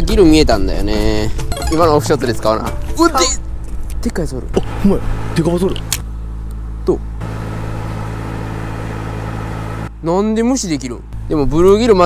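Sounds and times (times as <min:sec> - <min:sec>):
low mechanical hum: 0:03.4 - 0:10.0.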